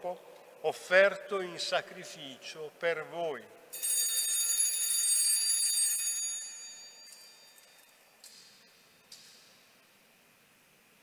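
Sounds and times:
altar bells ringing: 3.7 - 8.1.

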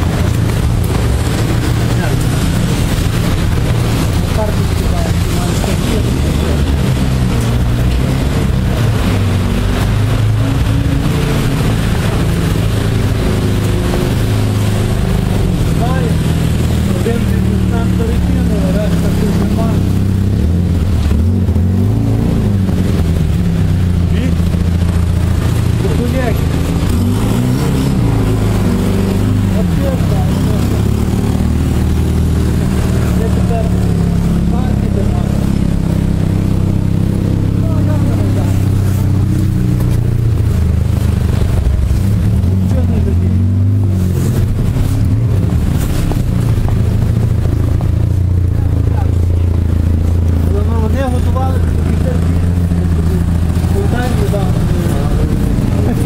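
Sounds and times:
indistinct voices: 0.0 - 56.0
loud low rumble: 0.0 - 56.0.

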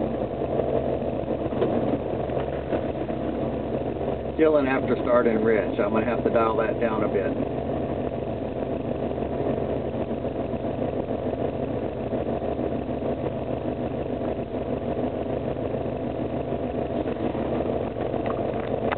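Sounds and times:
engine idling: 0.0 - 18.9.

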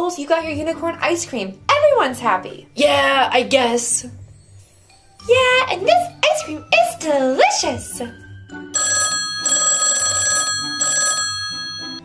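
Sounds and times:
telephone ringing: 8.8 - 12.0.

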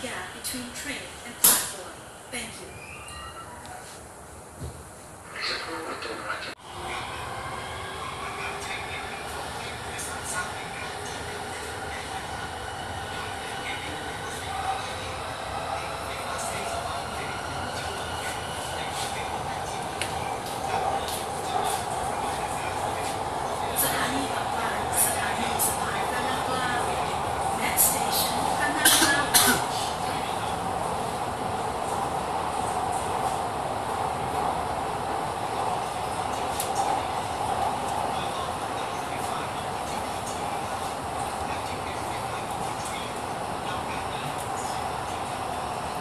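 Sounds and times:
metro car running rumble: 3.6 - 46.0.

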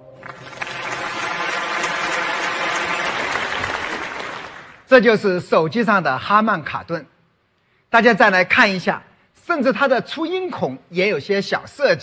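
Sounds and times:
audience applauding: 0.0 - 4.9.

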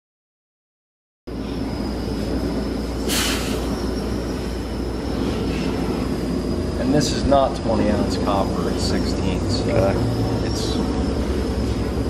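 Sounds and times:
workshop machine rumble and whine: 1.3 - 12.0
brief hiss: 3.1 - 3.7.

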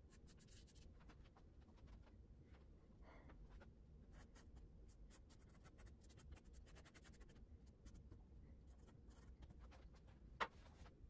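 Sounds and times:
pastel scratching on paper: 4.2 - 8.0.

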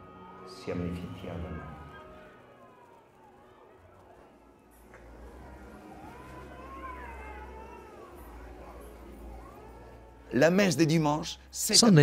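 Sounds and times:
high-pitched wail: 5.1 - 10.2.

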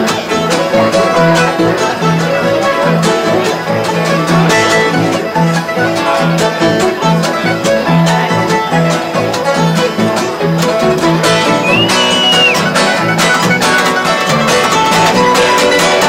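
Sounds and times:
acoustic guitars flat-picked: 0.0 - 16.0
upright bass plucking: 0.0 - 16.0.

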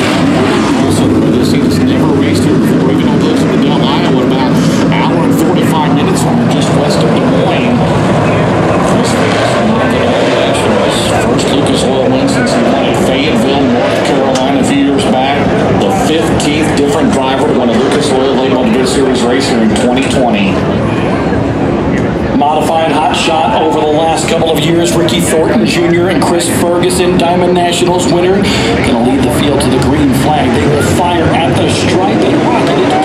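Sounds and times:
race car engines droning: 0.0 - 33.0.

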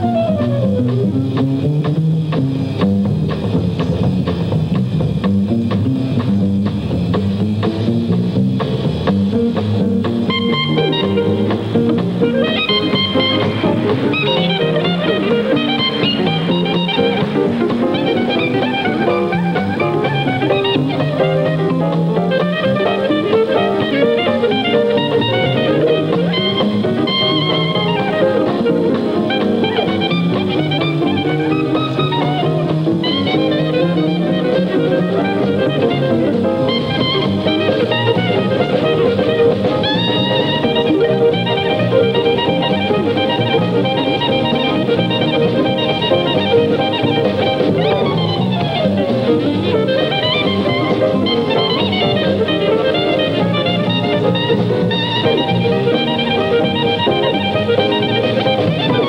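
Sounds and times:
clarinet lead: 0.0 - 2.0, 9.4 - 59.0
dixieland jazz band: 0.0 - 59.0.

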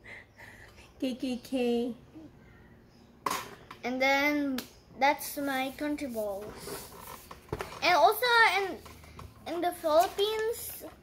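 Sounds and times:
boy speaking: 3.8 - 6.9, 7.8 - 11.0.

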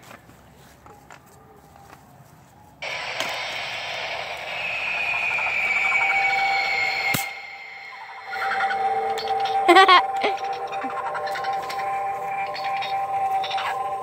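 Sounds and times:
prop sound effect falling tone: 2.8 - 14.0.

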